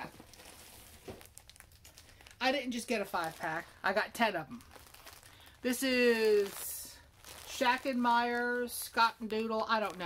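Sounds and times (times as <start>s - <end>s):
packaging rustling and crinkling: 0.0s - 10.0s.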